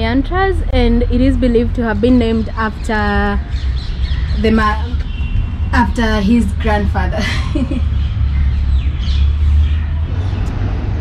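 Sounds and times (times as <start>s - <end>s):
distant traffic rumble: 0.0s - 11.0s.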